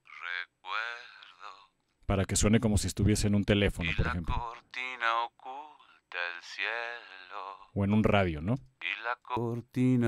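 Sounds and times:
person singing through telephone filter: 0.0s - 1.8s, 3.8s - 7.8s, 8.8s - 10.0s.

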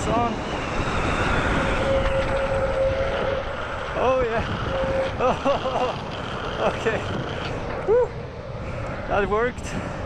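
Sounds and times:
wheels rolling on asphalt: 0.0s - 10.0s
wind rushing over microphone: 0.0s - 10.0s.

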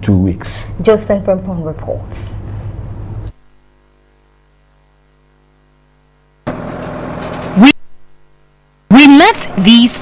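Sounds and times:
low mains hum: 0.0s - 10.0s
woman speaking: 0.8s - 2.4s, 8.9s - 10.0s.

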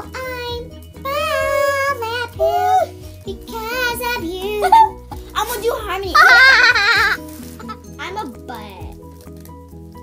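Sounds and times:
child's high warbling voice: 1.0s - 2.9s.

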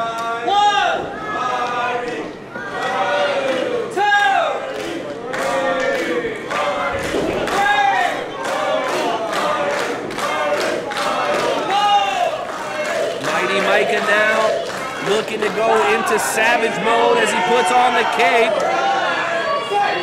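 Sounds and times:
crowd shouting and chanting: 0.0s - 20.0s
rhythmic clapping: 4.6s - 18.7s.

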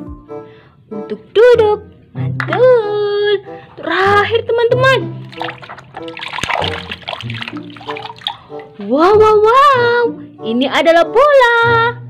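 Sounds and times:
background music: 0.0s - 12.0s
water splashing and trickling: 3.7s - 8.9s
sharp splash or knock: 5.2s - 8.8s.

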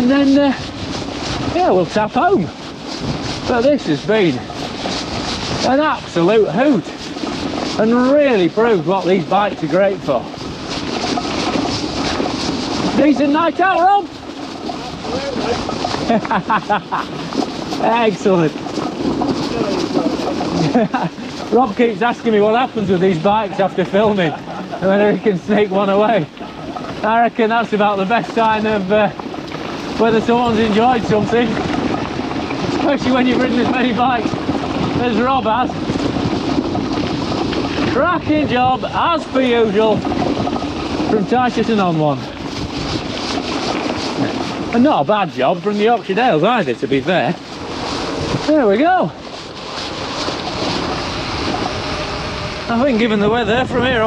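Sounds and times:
man talking: 0.0s - 0.6s, 1.5s - 2.5s, 3.5s - 4.5s, 5.6s - 7.0s, 7.8s - 10.3s, 12.9s - 14.1s, 15.0s - 15.7s, 17.8s - 18.6s, 19.4s - 29.2s, 30.0s - 31.6s, 32.8s - 34.3s, 37.9s - 40.0s, 44.7s - 47.4s, 48.4s - 49.2s, 52.6s - 54.0s
bike rolling on dirt track: 0.0s - 54.0s
wind on microphone: 0.0s - 54.0s.

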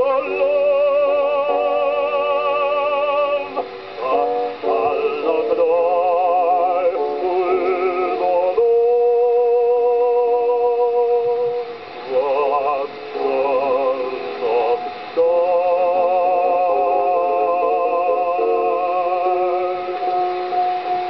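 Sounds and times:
man singing with vibrato: 0.0s - 20.9s.

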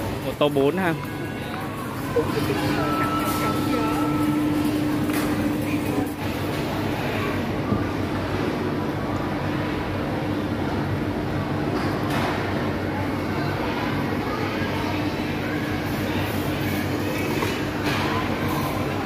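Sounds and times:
machinery hum: 0.0s - 19.0s
murmur of people: 0.0s - 19.0s.

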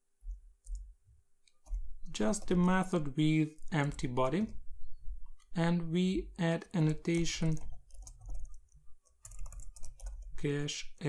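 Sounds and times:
soft keyboard keystrokes: 6.8s - 10.3s.

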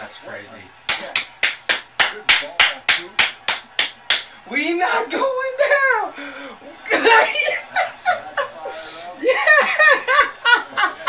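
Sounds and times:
person clapping hands: 0.9s - 4.3s.

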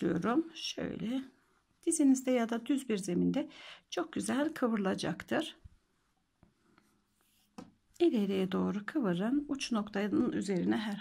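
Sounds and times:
hands handling yarn: 5.6s - 8.0s.

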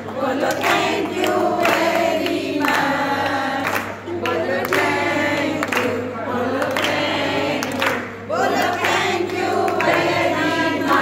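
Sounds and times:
women singing in chorus: 0.0s - 11.0s
hands clapping in time: 0.4s - 11.0s.

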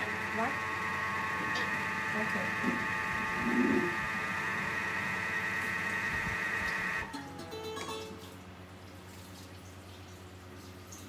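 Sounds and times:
kitchen motor humming: 0.0s - 8.2s.

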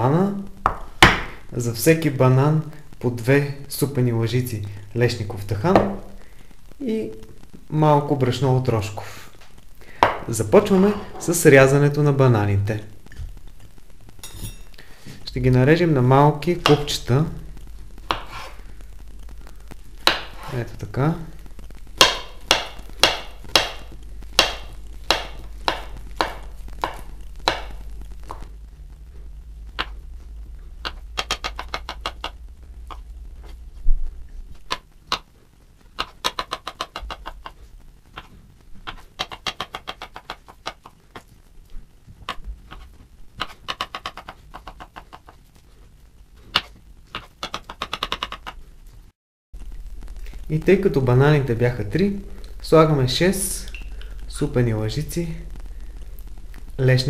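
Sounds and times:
knife scraping: 14.2s - 14.7s.

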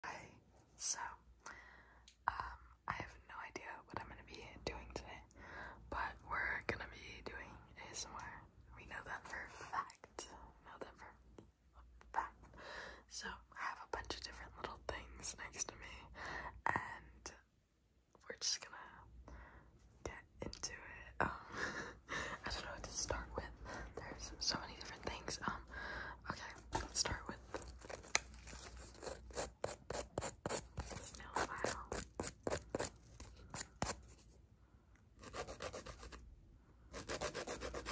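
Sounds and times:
woman whispering: 0.0s - 1.3s, 2.2s - 17.5s, 18.2s - 19.1s, 20.0s - 21.6s, 22.2s - 27.6s, 30.9s - 32.0s.

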